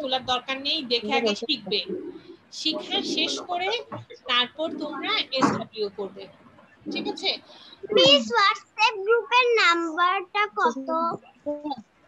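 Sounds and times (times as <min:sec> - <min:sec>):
child singing: 0:07.9 - 0:09.7.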